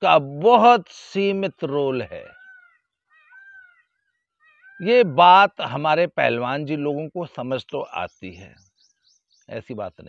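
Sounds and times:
high animal cries: 2.0 - 5.1.

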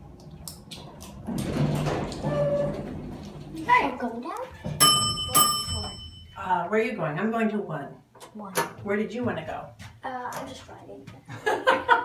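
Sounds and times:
elevator low hum: 0.0 - 4.0
elevator doors opening: 0.7 - 3.8.

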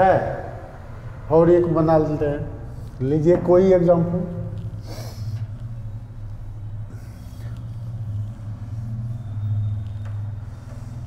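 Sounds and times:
cloth wiping a whiteboard: 6.5 - 11.0.

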